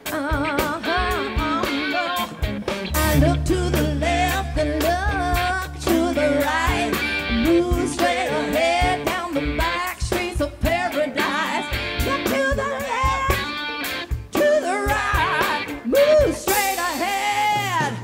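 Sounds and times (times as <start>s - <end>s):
person singing: 0.0s - 13.6s, 14.4s - 18.0s
electric guitar lead: 0.0s - 16.6s
drums: 0.0s - 18.0s.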